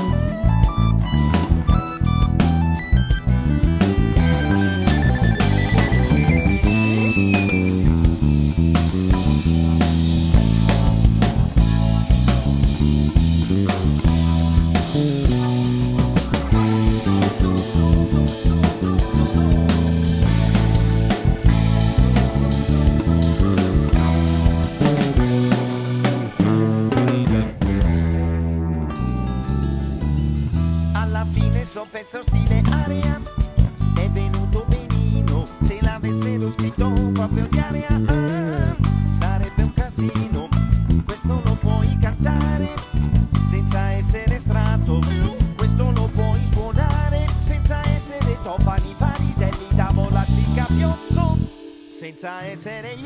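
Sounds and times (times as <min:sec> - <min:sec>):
band with drums: 0:00.0 - 0:28.1
electric bass line: 0:00.0 - 0:51.8.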